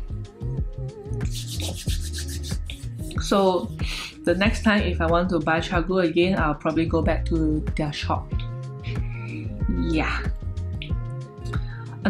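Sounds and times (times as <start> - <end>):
soft background music: 0.0 - 12.0
quick rubbing strokes: 1.2 - 3.1.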